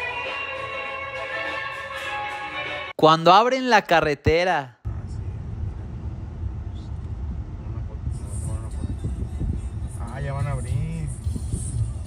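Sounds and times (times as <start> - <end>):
low rumble inside car: 4.9 - 12.0.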